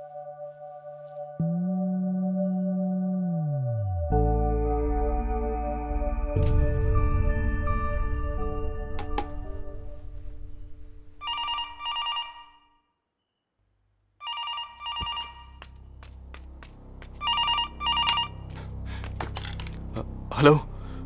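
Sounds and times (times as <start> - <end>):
telephone ringing: 11.2 - 12.8, 14.2 - 15.6, 17.2 - 18.4.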